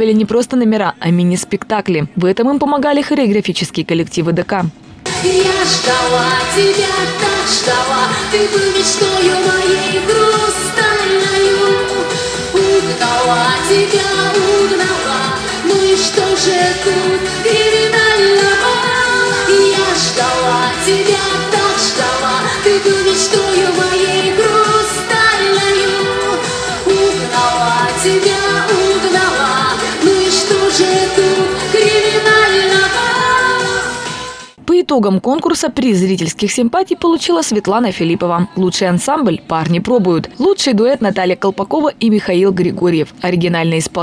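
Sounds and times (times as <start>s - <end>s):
pop backing track with beat: 5.0s - 34.6s
woman singing into a microphone: 5.1s - 34.4s.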